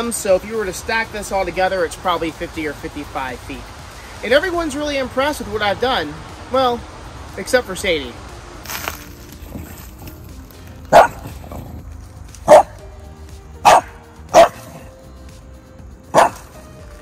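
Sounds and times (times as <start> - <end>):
dog barking: 10.9 - 11.5, 12.4 - 12.8, 13.6 - 14.8, 16.1 - 16.4.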